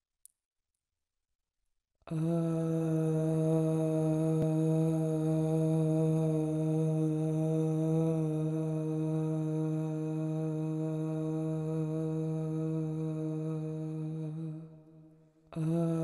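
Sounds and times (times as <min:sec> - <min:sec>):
person chanting low drone: 0:02.1 - 0:14.8, 0:15.6 - 0:16.0.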